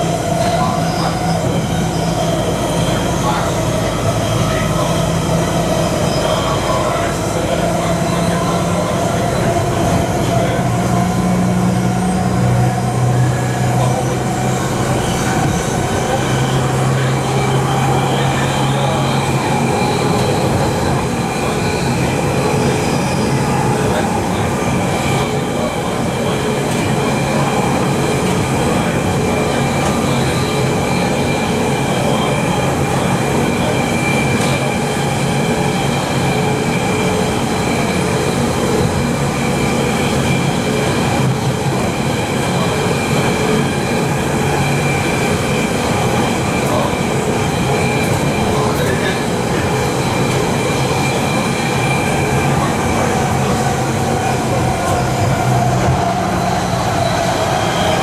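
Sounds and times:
high traction motor whine: 0.0s - 58.0s
train wheels rumbling on rail: 0.0s - 58.0s.

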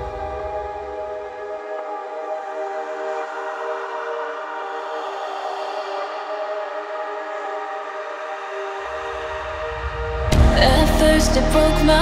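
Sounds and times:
deep bass note: 10.3s - 12.0s
melodic dubstep chord: 10.3s - 12.0s.

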